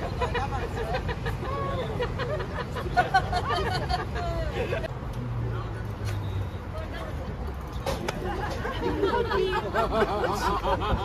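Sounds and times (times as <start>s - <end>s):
murmur of traffic and people: 0.0s - 11.0s
passers-by talking: 0.0s - 11.0s
passing road vehicle hum: 0.0s - 11.0s.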